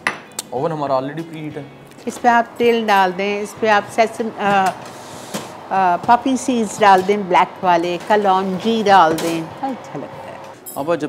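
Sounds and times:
people talking: 0.6s - 4.8s, 5.6s - 11.0s
metal tray sliding into oven: 2.7s - 10.6s.

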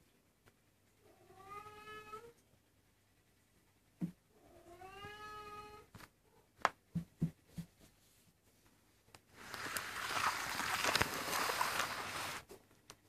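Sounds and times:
cat meowing: 1.1s - 2.4s, 4.4s - 5.9s.

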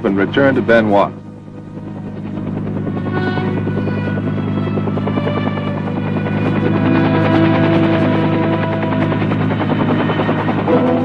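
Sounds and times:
helicopter rotor and engine: 0.0s - 11.0s.

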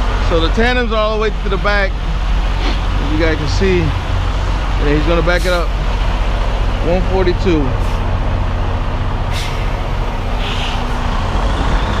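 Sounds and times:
diesel truck idling: 0.0s - 12.0s
air brakes hissing: 5.2s - 6.0s, 7.8s - 8.2s, 9.3s - 12.0s.

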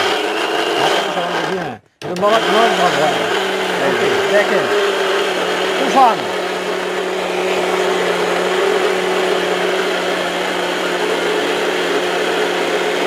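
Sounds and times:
mixer grinder motor humming: 0.0s - 13.0s.

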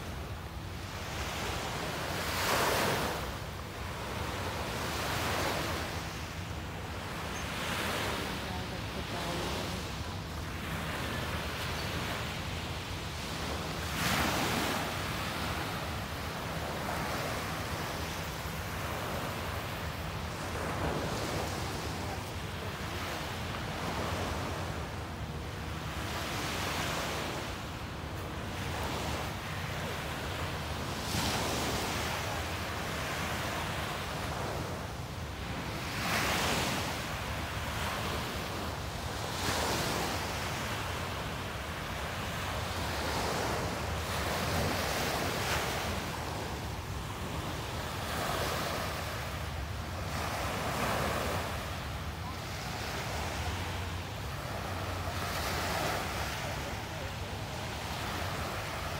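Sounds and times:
small waves breaking on beach: 0.0s - 58.9s.

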